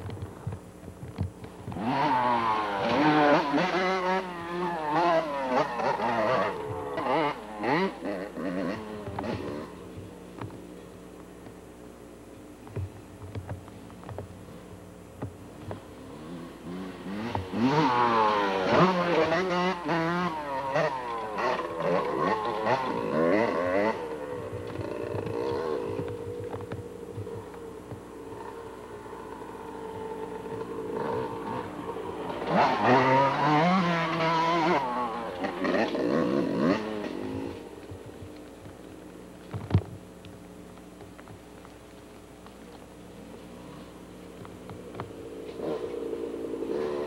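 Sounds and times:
dirt bike engine revving: 1.4s - 11.4s, 15.4s - 39.6s, 42.3s - 47.0s.

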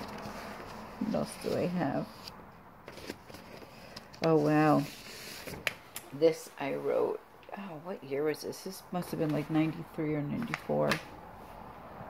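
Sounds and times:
paper pages rustling: 0.0s - 5.8s.

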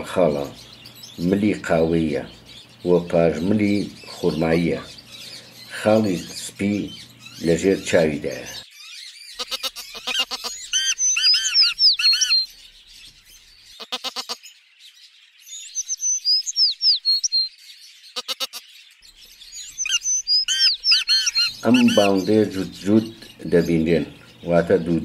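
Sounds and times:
bird calling: 0.0s - 14.4s, 15.5s - 17.5s, 18.1s - 25.0s.

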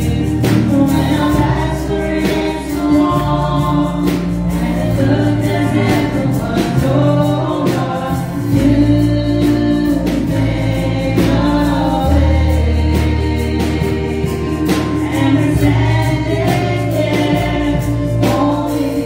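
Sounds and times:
electronic keyboard accompaniment: 0.0s - 19.0s
women singing gospel in harmony: 0.0s - 19.0s.

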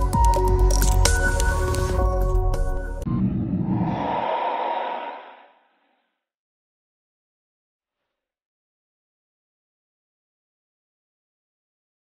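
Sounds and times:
airy whooshing sound effect: 3.2s - 5.8s.

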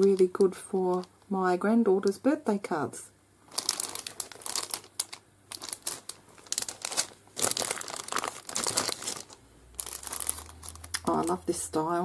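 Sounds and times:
plastic packets crinkling: 0.0s - 1.3s, 3.4s - 11.5s.

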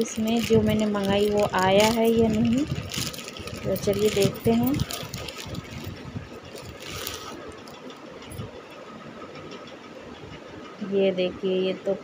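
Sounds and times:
plastic bag crinkling: 0.0s - 7.7s.

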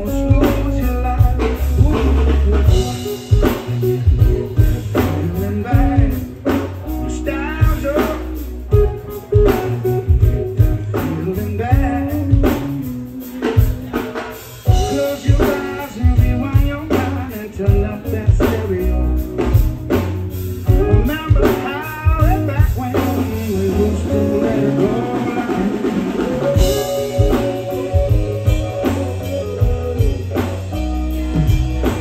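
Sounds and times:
live reggae band: 0.0s - 32.0s.

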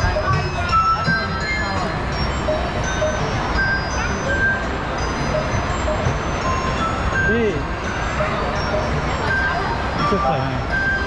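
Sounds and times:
tinkling music: 0.0s - 11.0s
voices nearby: 0.0s - 11.0s.

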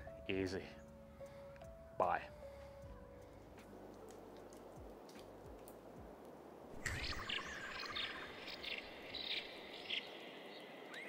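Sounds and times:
bird chirping: 6.8s - 11.0s
bird trilling: 6.8s - 11.0s.

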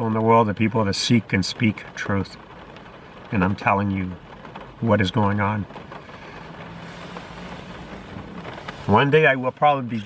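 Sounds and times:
car cabin hum and hiss: 0.0s - 10.0s.

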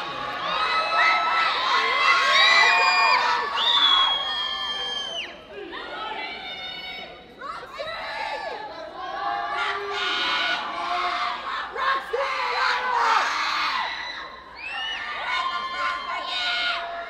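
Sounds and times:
audience cheering and screaming: 0.0s - 5.4s.

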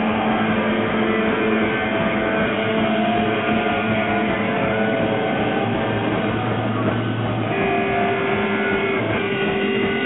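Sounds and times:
rock band electric guitar: 0.0s - 10.0s.

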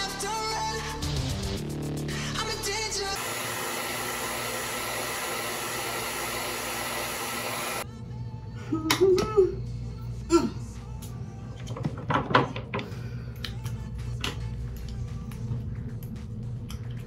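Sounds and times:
music with singing: 0.0s - 3.5s, 7.8s - 17.0s
hair dryer blowing: 3.0s - 7.9s.

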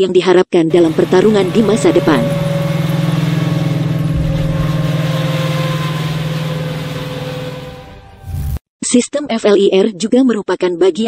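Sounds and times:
tracked vehicle engine running: 0.7s - 8.6s.

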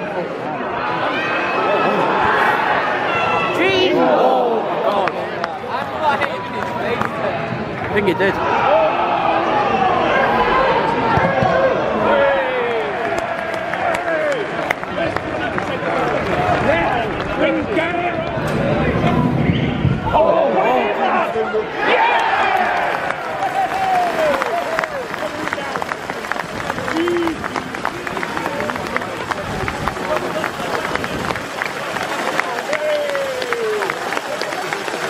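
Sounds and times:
crowd shouting: 0.0s - 5.4s, 8.2s - 14.7s, 20.0s - 35.0s.

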